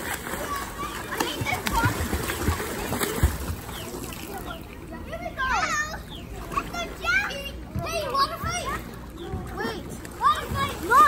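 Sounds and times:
children shouting at play: 0:03.7 - 0:11.0.

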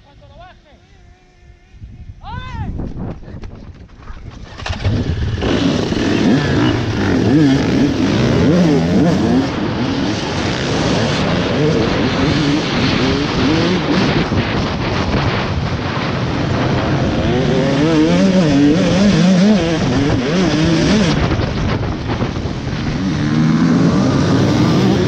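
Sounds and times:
dirt bikes revving and accelerating: 0:04.7 - 0:25.0.

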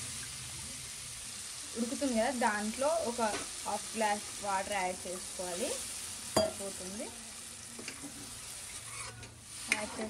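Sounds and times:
curry sizzling in a pan: 0:00.0 - 0:10.0
spoon clinking against pan: 0:06.4 - 0:06.6
metal spoon stirring: 0:08.7 - 0:10.0.

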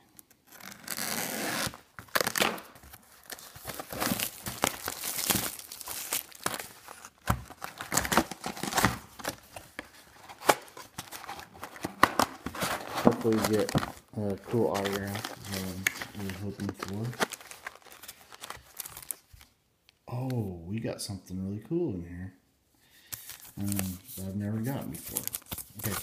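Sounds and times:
plastic wrap tearing and crinkling: 0:00.4 - 0:19.5, 0:23.2 - 0:26.0
scissors slitting plastic wrap: 0:00.5 - 0:09.4.

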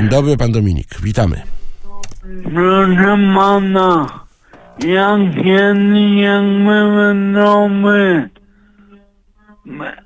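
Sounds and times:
man singing a long note over telephone: 0:02.2 - 0:04.2, 0:04.8 - 0:08.3.

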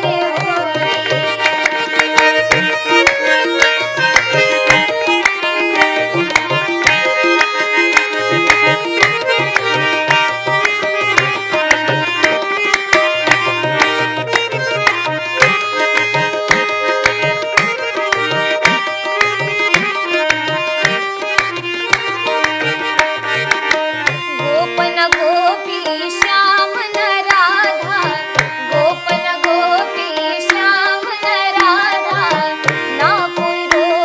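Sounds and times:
harmonium melody: 0:00.0 - 0:34.0
tabla rhythm: 0:00.0 - 0:34.0.

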